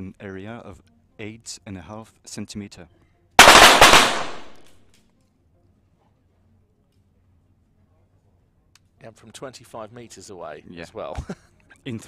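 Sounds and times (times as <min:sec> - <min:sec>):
pistol shots reverberating indoors: 0:03.4 - 0:04.7
faint sharp cracks: 0:03.4 - 0:04.8.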